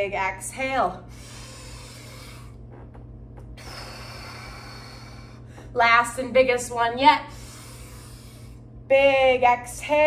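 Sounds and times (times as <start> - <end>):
woman breathing deeply: 1.0 - 2.9, 3.6 - 5.8, 7.2 - 8.8.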